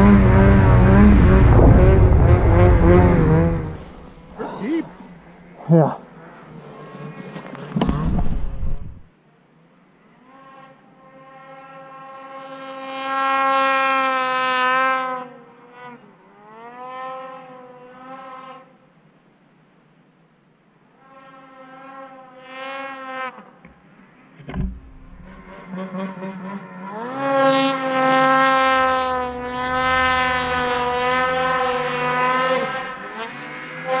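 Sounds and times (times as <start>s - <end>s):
snowmobile engine revving: 0.0s - 7.2s, 24.7s - 34.0s
dull thump: 7.8s - 9.1s, 24.4s - 25.5s.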